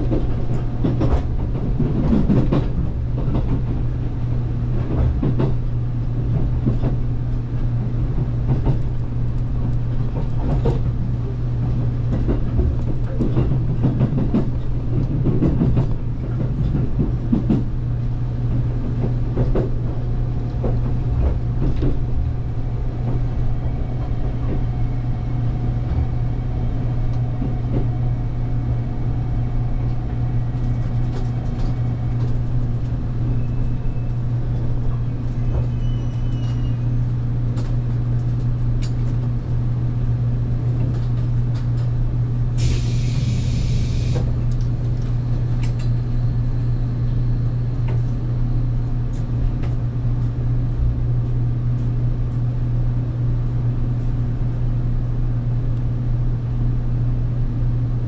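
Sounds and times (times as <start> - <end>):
train equipment low hum: 0.0 - 58.0
compressed air hissing: 42.6 - 44.4.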